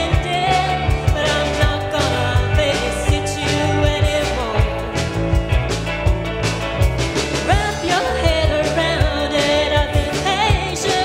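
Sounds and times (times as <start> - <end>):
woman singing with vibrato: 0.0 - 5.0, 7.4 - 11.0
drum kit beat: 0.0 - 11.0
electric guitar: 0.0 - 11.0.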